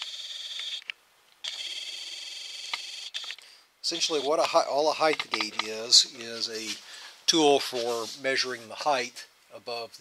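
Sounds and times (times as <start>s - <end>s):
camera zoom motor whining: 0.0s - 4.4s.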